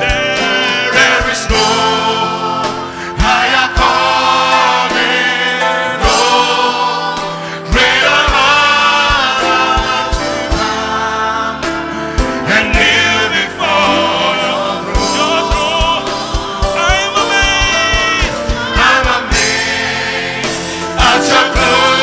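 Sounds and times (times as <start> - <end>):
choir and congregation singing: 0.0 - 22.0
drum beats: 0.0 - 22.0
guitar: 0.0 - 22.0
keyboard: 0.0 - 22.0.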